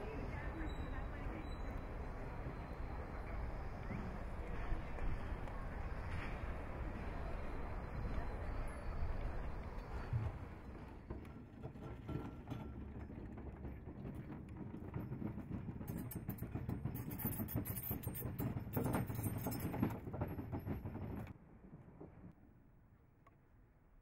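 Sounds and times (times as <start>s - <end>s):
trolley wheels rattling on rails: 0.0s - 22.4s.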